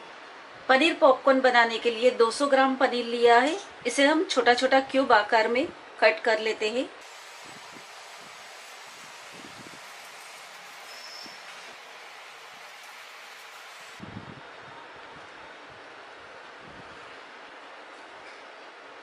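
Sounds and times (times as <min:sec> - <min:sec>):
background hiss: 0:07.0 - 0:14.1.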